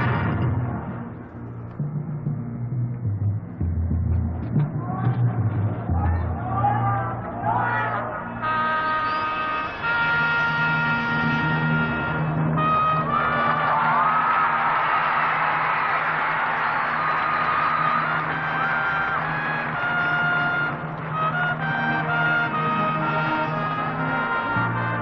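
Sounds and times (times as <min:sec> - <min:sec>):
brass chords: 0:00.0 - 0:02.6, 0:03.4 - 0:15.0, 0:17.1 - 0:25.0
low bass line: 0:00.0 - 0:07.6.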